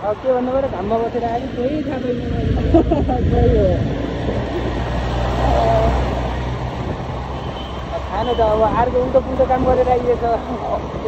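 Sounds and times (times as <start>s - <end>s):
road and wind noise: 0.0s - 11.0s
vehicle engine humming: 0.0s - 11.0s.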